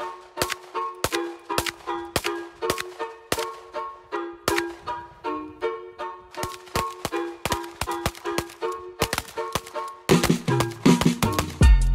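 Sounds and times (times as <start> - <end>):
bouncy plucked-note music: 0.0 - 11.9.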